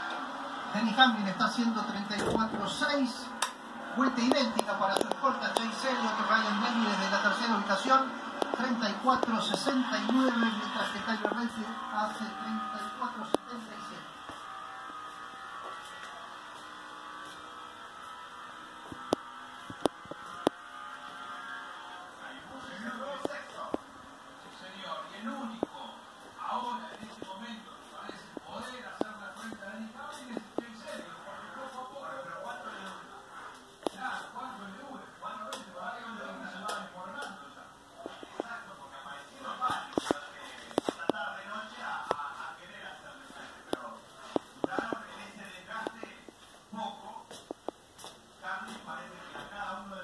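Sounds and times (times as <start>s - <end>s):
indistinct voices talking quietly: 0.0s - 50.0s
room hum: 0.0s - 50.0s.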